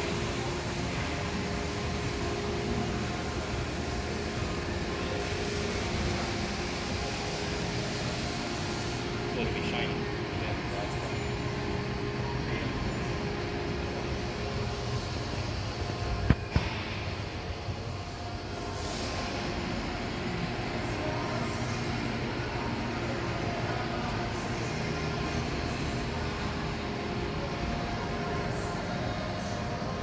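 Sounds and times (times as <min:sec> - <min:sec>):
low mechanical hum: 0:00.0 - 0:30.0.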